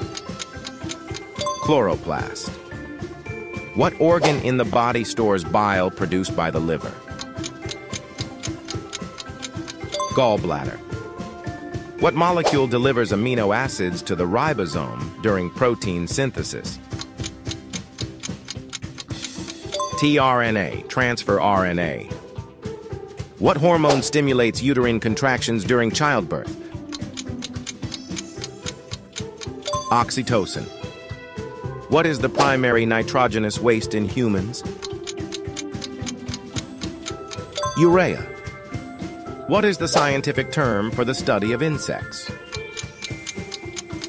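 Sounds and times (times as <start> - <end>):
clock ticking: 0.0 - 1.9, 7.0 - 10.5, 16.8 - 20.3, 26.8 - 30.2, 34.6 - 38.2, 42.4 - 44.0
background music: 0.0 - 44.0.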